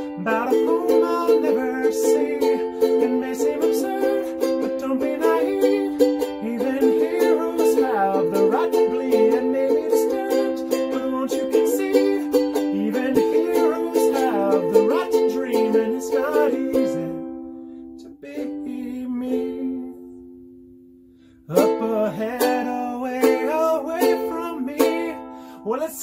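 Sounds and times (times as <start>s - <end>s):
ukulele strumming chords: 0.0s - 26.0s.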